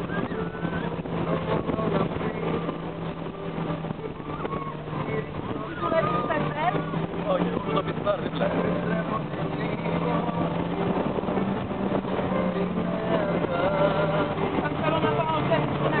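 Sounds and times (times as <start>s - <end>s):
motorboat engine running: 0.0s - 16.0s
water rushing in wake: 0.0s - 16.0s
voices calling out: 3.9s - 16.0s.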